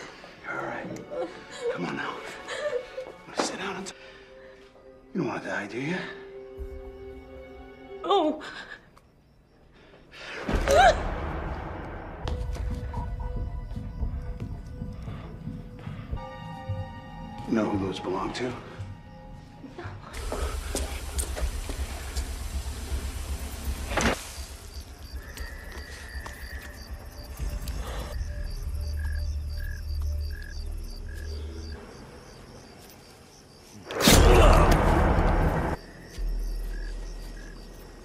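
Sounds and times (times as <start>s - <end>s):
tense film score: 0.0s - 38.0s.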